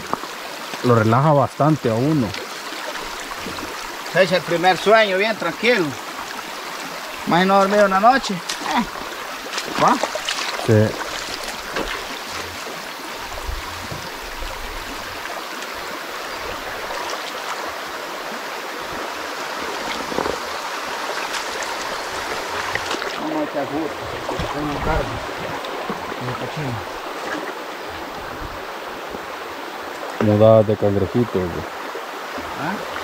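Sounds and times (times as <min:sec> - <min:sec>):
stream flowing over stones: 0:00.0 - 0:33.0.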